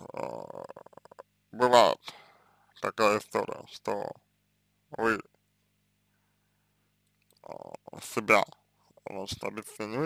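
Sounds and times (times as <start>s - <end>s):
man saying eh: 0.0s - 2.2s, 4.9s - 5.3s
faint low hum: 0.0s - 10.0s.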